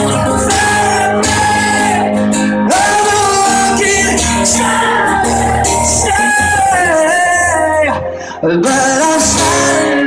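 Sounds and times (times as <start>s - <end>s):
man singing: 0.0s - 10.0s
strummed acoustic guitar: 0.0s - 10.0s.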